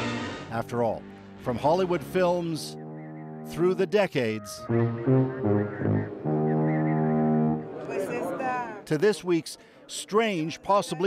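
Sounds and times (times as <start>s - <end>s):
long low synth note: 4.4s - 7.8s.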